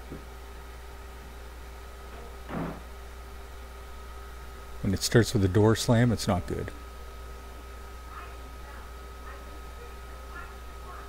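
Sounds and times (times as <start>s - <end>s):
steady low hum: 0.0s - 11.0s
door slamming shut: 2.5s - 2.8s.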